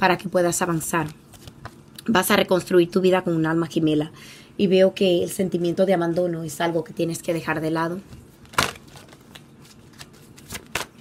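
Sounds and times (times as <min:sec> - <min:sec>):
cards flicking and slapping: 0:08.5 - 0:11.0.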